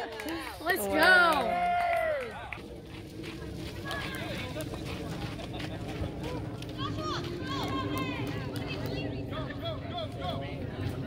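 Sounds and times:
open-air field noise: 0:00.0 - 0:11.0.

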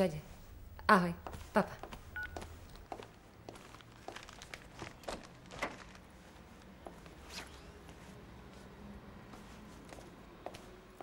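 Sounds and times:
soft footsteps: 0:01.2 - 0:11.0
two-tone phone keypad beep: 0:02.2 - 0:02.4.

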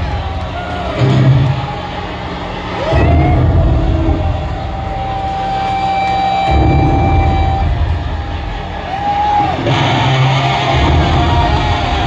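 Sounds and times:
heavy distorted bass and guitars: 0:00.0 - 0:12.0.

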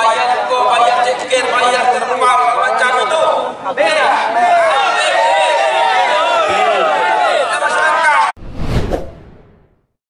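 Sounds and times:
whoosh transition effect: 0:08.4 - 0:09.8.

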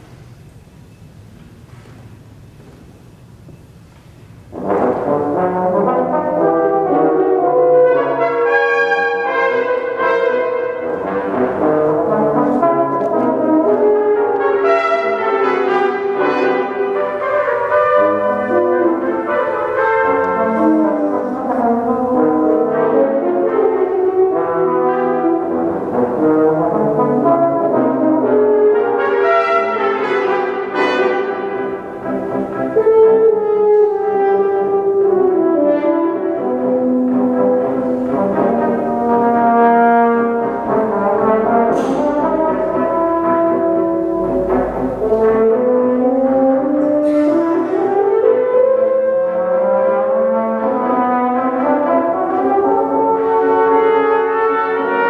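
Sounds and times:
brass quintet playing: 0:04.4 - 0:55.0.

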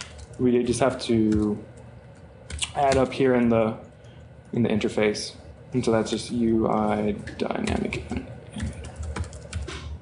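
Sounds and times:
laptop keyboard typing: 0:00.0 - 0:04.6, 0:05.9 - 0:10.0.

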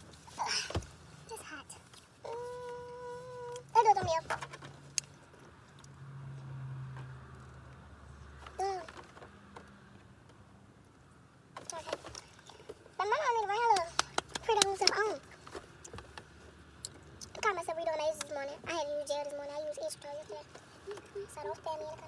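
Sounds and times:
girl singing or humming: 0:02.2 - 0:04.3.

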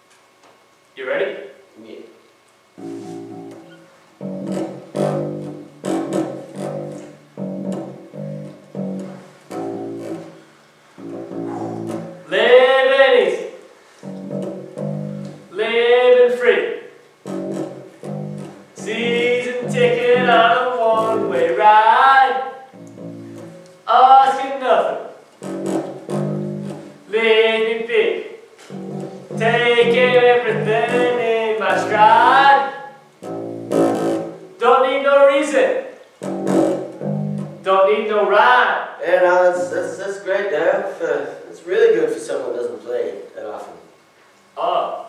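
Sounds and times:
electric bass guitar riff: 0:02.8 - 0:15.6, 0:17.2 - 0:24.1, 0:25.4 - 0:27.4, 0:28.6 - 0:34.7, 0:36.2 - 0:37.7, 0:39.3 - 0:40.0
man singing: 0:12.3 - 0:13.5, 0:15.5 - 0:16.7, 0:18.8 - 0:22.6, 0:23.9 - 0:25.0, 0:27.1 - 0:28.3, 0:29.3 - 0:32.9.

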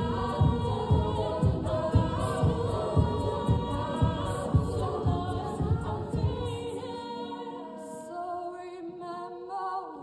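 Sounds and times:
steady low beat: 0:00.0 - 0:06.6
female group singing in harmony: 0:00.0 - 0:10.0.

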